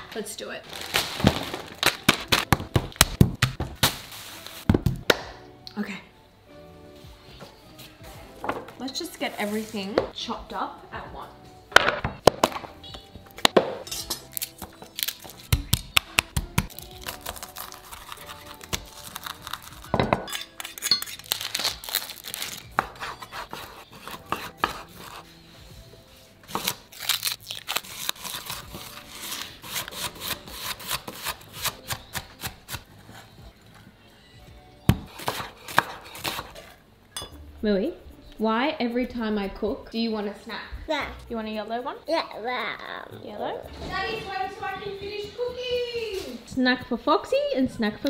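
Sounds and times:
music playing: 0.0 - 48.0
knife chopping on wooden board: 22.8 - 25.2, 34.9 - 36.7.

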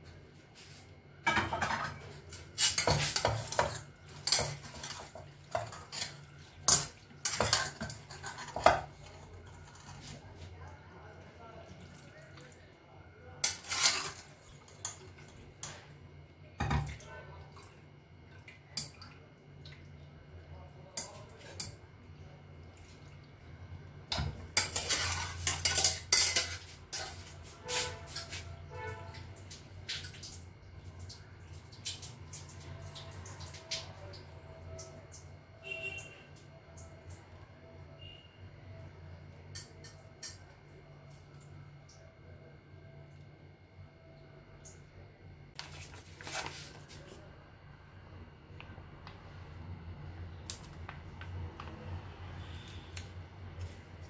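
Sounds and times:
dishes and utensils clattering: 1.2 - 9.9, 24.1 - 28.4
metal spoon scraping steel pot: 24.6 - 28.9.

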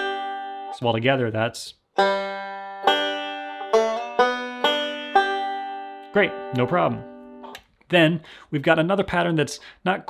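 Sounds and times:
banjo picked slowly: 0.0 - 1.0, 2.0 - 7.6.

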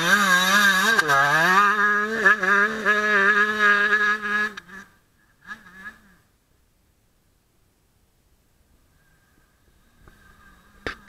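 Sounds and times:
motocross bike engine revving: 0.0 - 6.4, 8.9 - 11.0.

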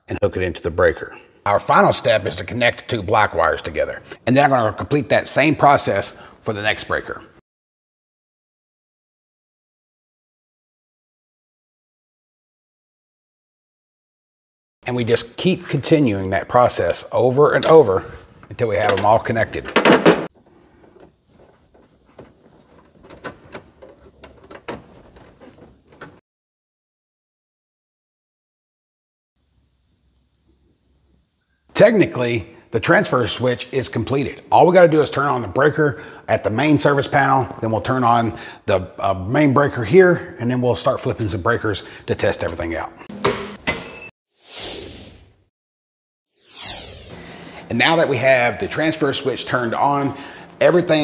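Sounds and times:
rustling of wires: 18.2 - 26.2
whoosh sound effect: 44.4 - 45.3, 46.4 - 47.8.

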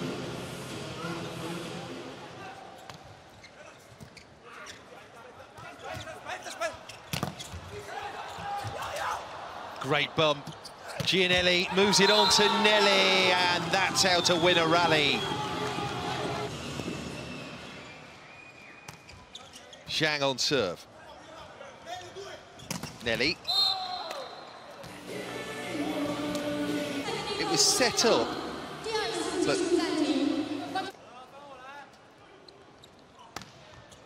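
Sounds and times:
crowd noise: 0.0 - 2.9, 5.2 - 18.4, 23.8 - 32.8.

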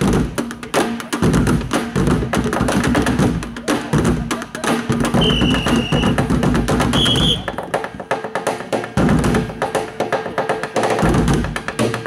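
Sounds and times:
sticks drumming on plastic barrels: 0.0 - 12.0.

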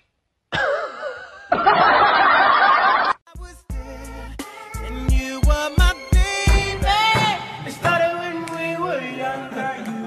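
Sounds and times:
laughter from many voices: 0.7 - 3.2.

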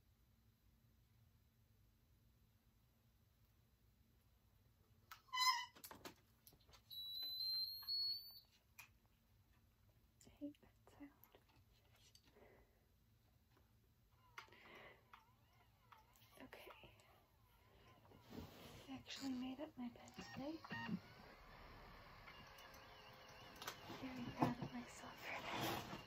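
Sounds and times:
infusion pump beep: 6.9 - 8.4, 20.1 - 26.0.

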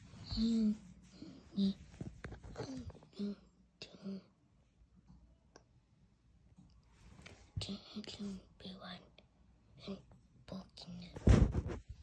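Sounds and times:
person speaking: 0.0 - 4.3.

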